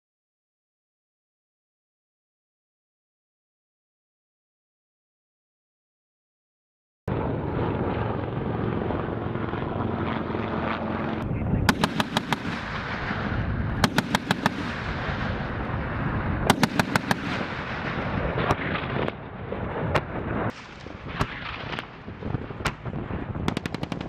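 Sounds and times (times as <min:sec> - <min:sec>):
helicopter rotors and engines: 0:07.1 - 0:24.0
automatic gunfire: 0:11.7 - 0:15.4, 0:16.5 - 0:19.1, 0:23.5 - 0:24.0.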